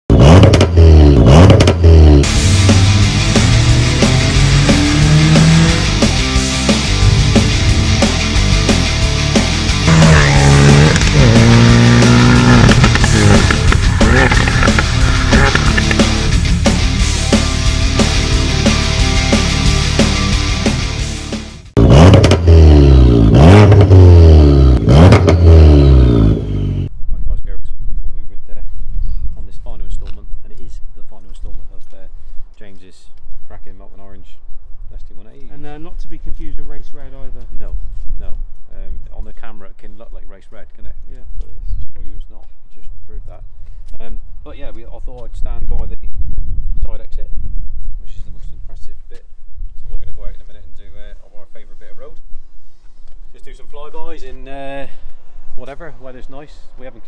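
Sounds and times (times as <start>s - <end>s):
sharp exhaust cracks: 0.1s - 17.5s, 21.8s - 26.9s
car engine revving: 0.1s - 26.9s.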